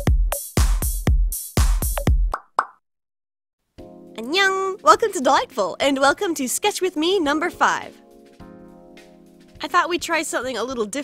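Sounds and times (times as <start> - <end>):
electronic music with kick drum: 0.0 - 2.5.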